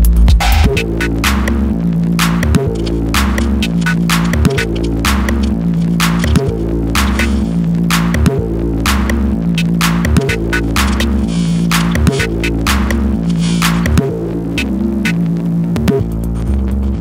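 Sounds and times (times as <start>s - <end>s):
techno track: 0.0s - 17.0s.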